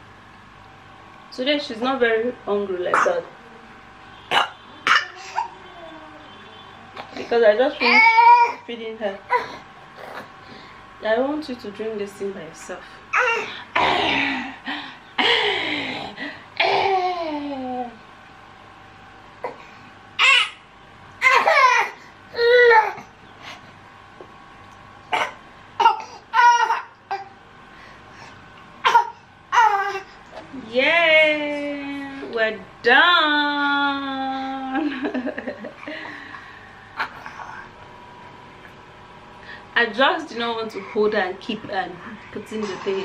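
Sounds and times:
baby babbling and whimpering: 0:04.9 - 0:06.4, 0:07.8 - 0:08.6, 0:13.1 - 0:13.6, 0:21.2 - 0:23.1, 0:28.9 - 0:30.2, 0:37.0 - 0:37.7
person coughing: 0:25.2 - 0:26.1.

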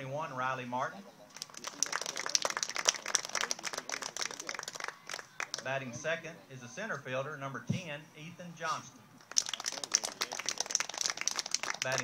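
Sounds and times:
crowd applause: 0:01.4 - 0:05.6, 0:09.3 - 0:12.0.

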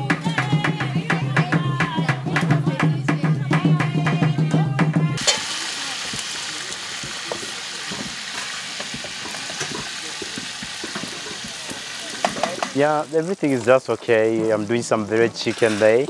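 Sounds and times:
food sizzling in pot: 0:03.5 - 0:16.0.

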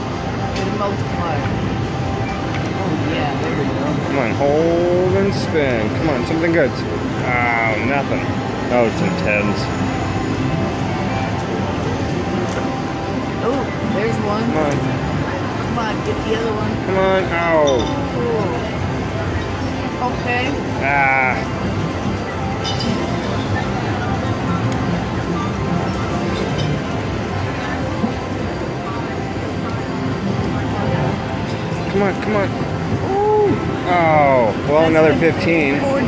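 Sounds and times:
casino crowd din: 0:00.0 - 0:36.0.

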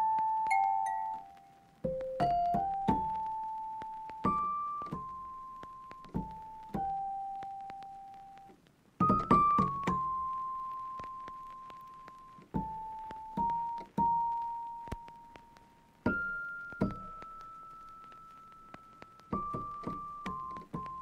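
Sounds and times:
slow piano melody: 0:00.0 - 0:21.0.

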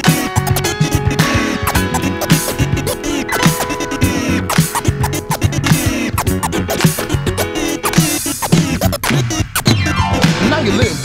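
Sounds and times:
hip hop beat: 0:00.0 - 0:11.0
vinyl scratching: 0:00.0 - 0:11.0.

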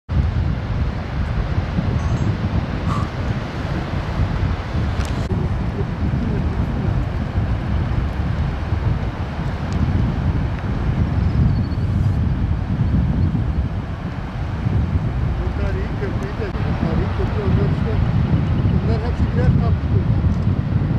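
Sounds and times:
wind buffeting microphone: 0:00.1 - 0:20.9.

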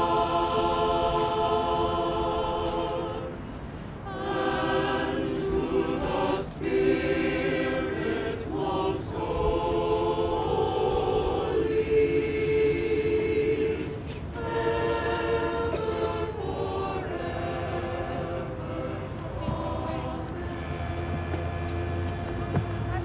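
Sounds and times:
choir singing: 0:00.0 - 0:23.0.

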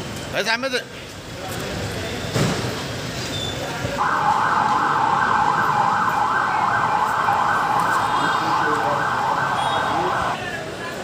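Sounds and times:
crowd: 0:00.0 - 0:11.0
siren sweeping up and down: 0:04.0 - 0:10.4.

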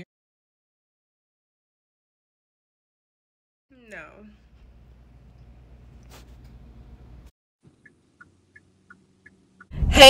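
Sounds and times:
low steady hum: 0:03.8 - 0:10.0
car turn signal ticking: 0:07.8 - 0:09.7.

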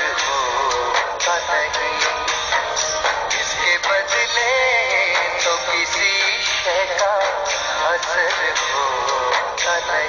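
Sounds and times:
instrumental backing with steady beat: 0:00.0 - 0:10.0
person singing with vibrato: 0:00.0 - 0:10.0.

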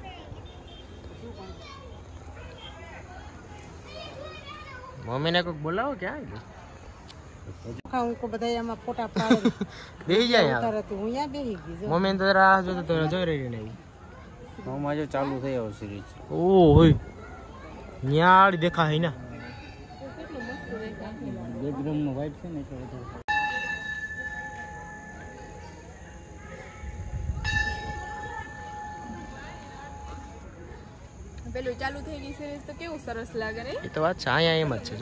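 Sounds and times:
distant children calling and talking: 0:00.0 - 0:07.6, 0:12.7 - 0:35.0.

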